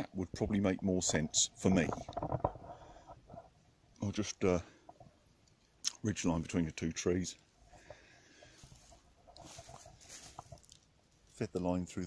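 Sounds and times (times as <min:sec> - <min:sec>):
fabric rustling: 0:08.4 - 0:10.8.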